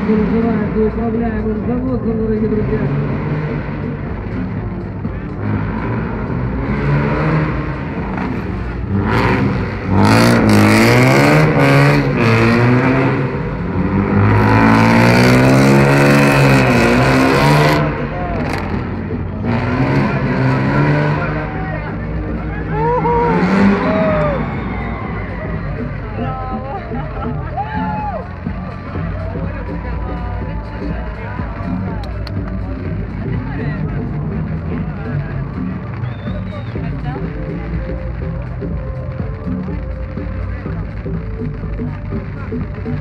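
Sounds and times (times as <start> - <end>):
car engine revving: 0.0 - 43.0.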